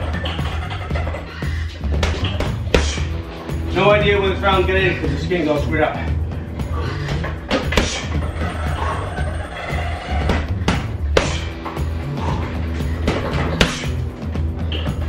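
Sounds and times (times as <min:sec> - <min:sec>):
music with heavy bass beat: 0:00.0 - 0:15.0.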